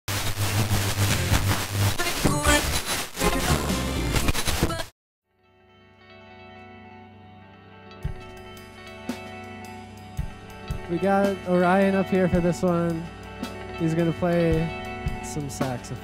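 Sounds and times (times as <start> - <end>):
rock music with drum beat: 0.1 - 4.9, 8.0 - 16.0.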